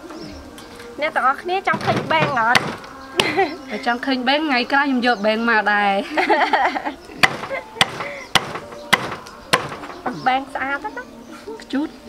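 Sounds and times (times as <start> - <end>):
knife chopping on wooden board: 1.7 - 3.3, 7.2 - 9.9.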